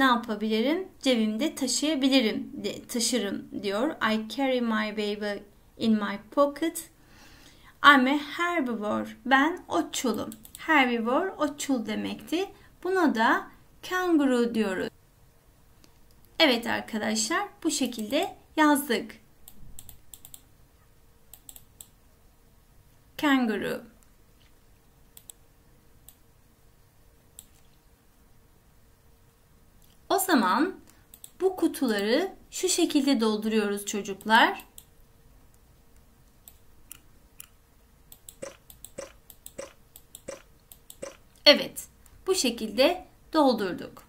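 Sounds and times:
faint steady hum: 0.0s - 44.0s
computer mouse clicks: 10.2s - 10.6s, 19.4s - 20.5s, 21.3s - 22.0s, 25.1s - 25.4s, 26.0s - 26.2s, 27.3s - 27.8s, 30.9s - 32.0s, 34.2s - 34.9s, 35.5s - 41.4s.

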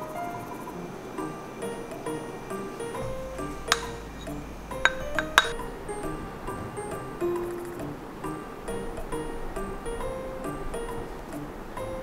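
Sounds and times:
background music: 0.0s - 12.0s
rice paddle clinking on pot: 3.4s - 5.6s.

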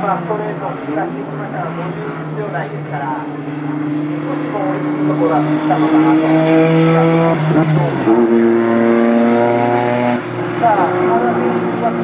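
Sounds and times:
commentator speaking: 0.0s - 3.4s, 4.2s - 8.4s, 10.6s - 12.0s
race car engine: 0.0s - 12.0s.

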